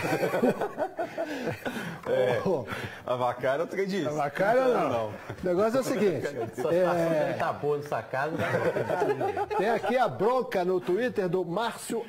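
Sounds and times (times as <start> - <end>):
men chuckling and laughing: 0.0 - 2.6, 5.2 - 7.4, 8.3 - 10.2.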